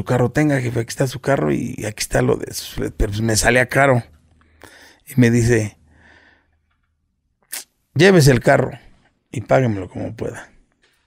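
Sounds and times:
man talking: 0.0 - 4.2, 5.0 - 5.8, 7.5 - 10.6
man's sharp breath in: 4.5 - 5.0, 5.9 - 6.6.

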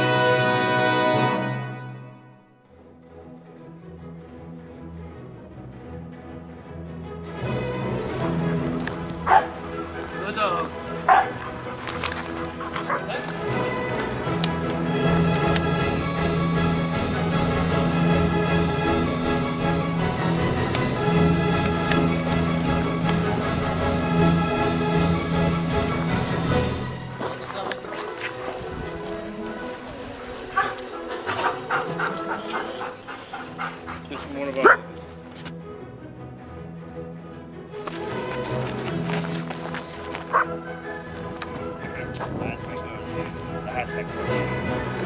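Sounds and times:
background music: 0.0 - 45.0
dog barking: 9.2 - 9.6, 11.1 - 11.6, 12.7 - 13.2, 30.5 - 34.0, 34.6 - 34.9, 40.3 - 40.6.

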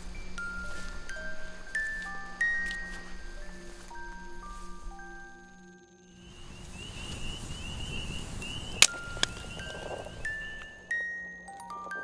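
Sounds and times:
campfire crackling: 0.0 - 5.4, 6.2 - 12.0
high chirping: 0.0 - 12.0
fire popping: 6.3 - 10.9.

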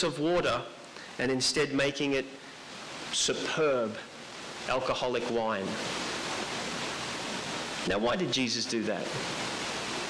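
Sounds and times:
man speaking: 0.0 - 2.4, 3.1 - 4.1, 4.7 - 5.8, 7.8 - 9.2
background hiss: 0.0 - 10.0.

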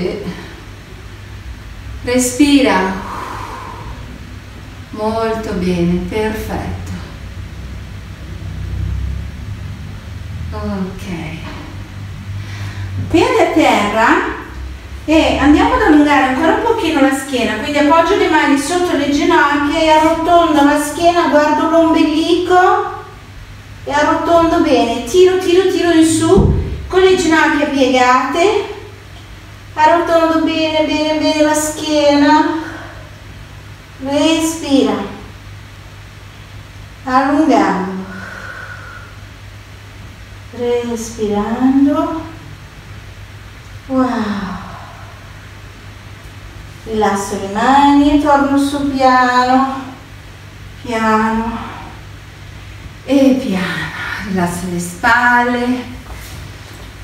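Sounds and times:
low hum: 0.0 - 57.0
low steady rumble: 0.0 - 57.0
faint hiss: 10.3 - 57.0.

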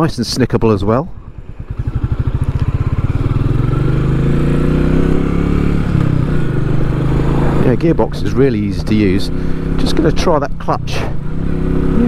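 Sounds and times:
motorcycle engine pulling away: 1.2 - 12.0.

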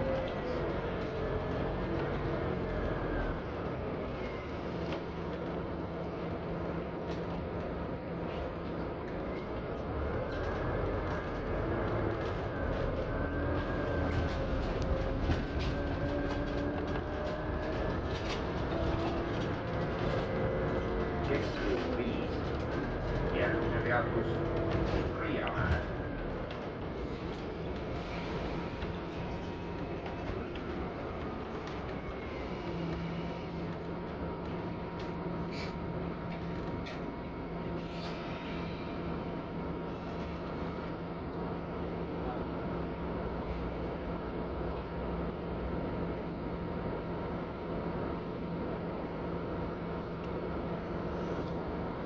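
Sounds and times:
transit vehicle rolling rumble: 0.0 - 52.0.

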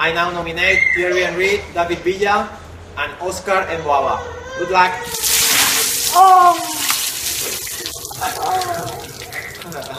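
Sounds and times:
man crying out: 5.0 - 7.0, 8.0 - 9.9
water splashing: 5.1 - 9.9
man laughing: 9.6 - 9.9.

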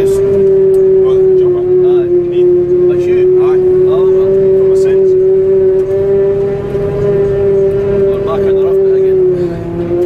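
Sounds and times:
forage harvester machine whine: 0.0 - 10.0
low machine rumble: 0.0 - 10.0.

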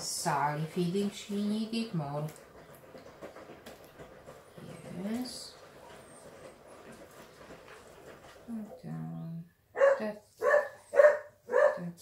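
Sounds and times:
dog barking: 9.8 - 12.0.

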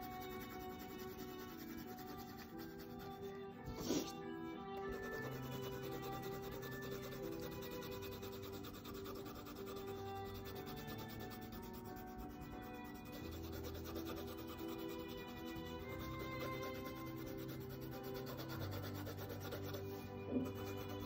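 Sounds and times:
pencil scratching on paper: 0.0 - 4.2, 4.8 - 21.0
soft background music: 0.0 - 21.0.

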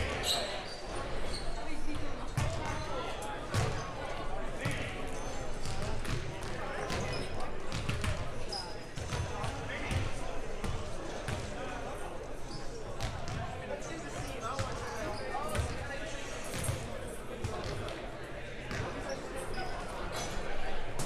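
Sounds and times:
basketballs bouncing on wooden floor: 7.7 - 8.2.

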